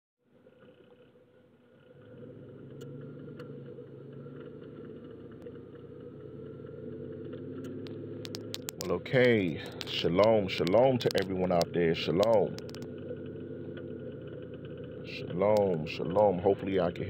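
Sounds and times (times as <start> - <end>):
car engine and road noise: 0.2 - 17.0
faint clicks: 7.6 - 12.9.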